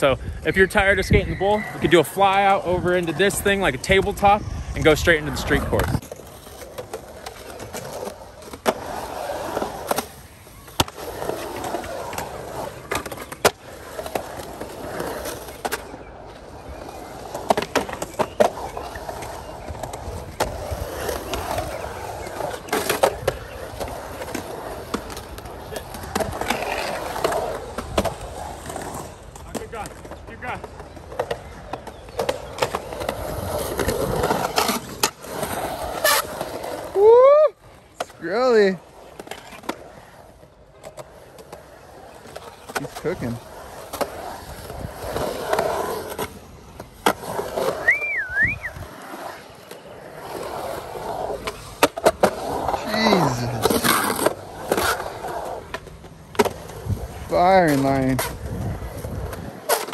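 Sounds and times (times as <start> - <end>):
skateboard wheels rolling on concrete: 0.0 - 59.9.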